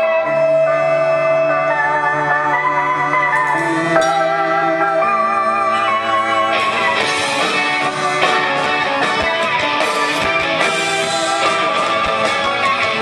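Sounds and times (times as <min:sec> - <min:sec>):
live rock band playing: 0:00.0 - 0:13.0
strummed electric guitars: 0:00.0 - 0:13.0.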